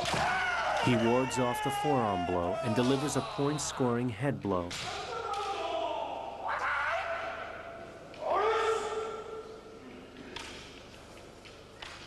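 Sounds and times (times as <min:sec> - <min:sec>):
kiai shouts in a large hall: 0:00.0 - 0:10.1.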